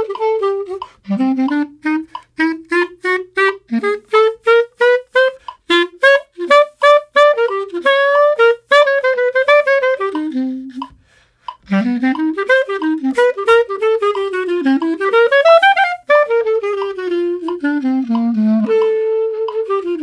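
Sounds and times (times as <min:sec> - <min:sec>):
clarinet playing short notes: 0:00.0 - 0:20.0.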